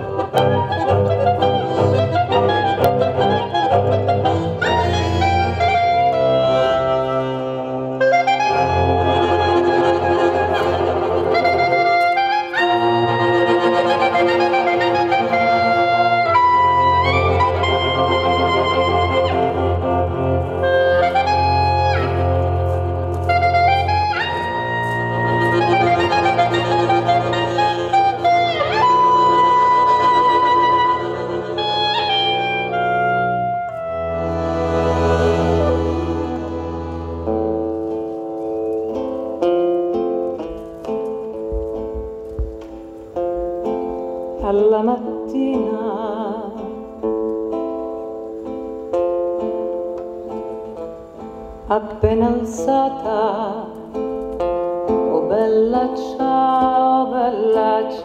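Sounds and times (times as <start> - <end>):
bowed cello: 0.0 - 42.8
accordion: 0.0 - 44.4
clarinet melody with slides: 0.0 - 44.4.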